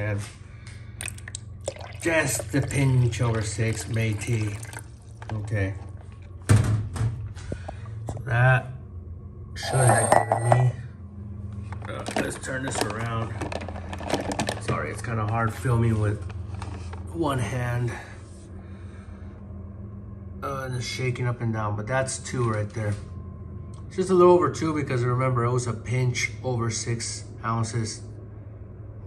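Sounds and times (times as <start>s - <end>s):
low steady hum: 0.0s - 29.0s.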